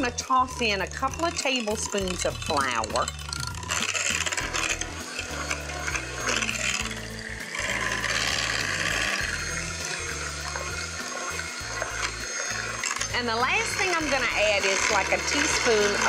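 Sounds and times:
electric hand mixer beating batter: 0:00.0 - 0:16.0.

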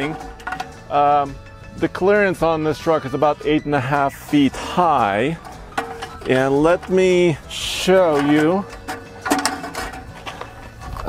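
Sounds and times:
metal ladder clack: 0:00.0 - 0:00.9, 0:05.4 - 0:11.0
ladder rattling: 0:00.0 - 0:01.0, 0:05.2 - 0:11.0.

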